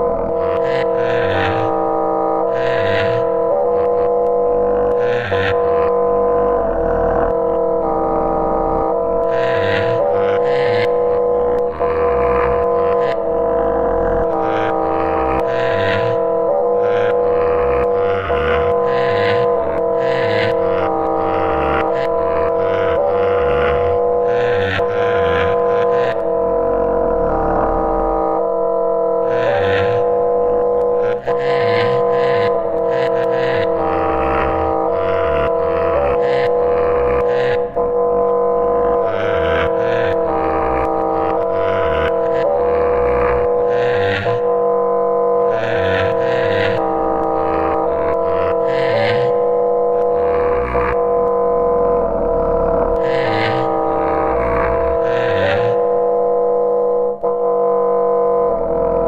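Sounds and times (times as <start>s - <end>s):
sustained electronic drone: 0.0s - 59.0s.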